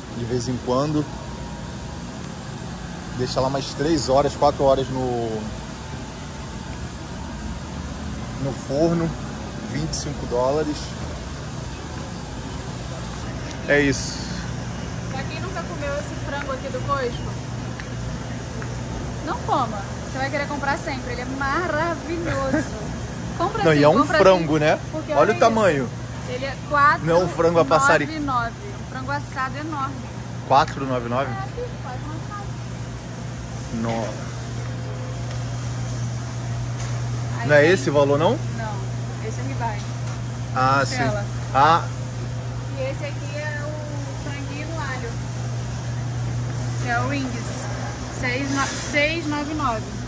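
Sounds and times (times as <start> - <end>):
fan and air noise: 0.0 - 50.0
refrigeration and ventilation hum: 0.0 - 50.0.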